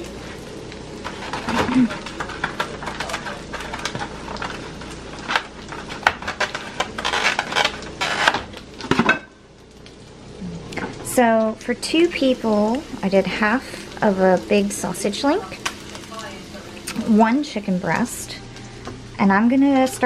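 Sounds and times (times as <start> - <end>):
meat sizzling in a skillet: 0.0 - 20.0.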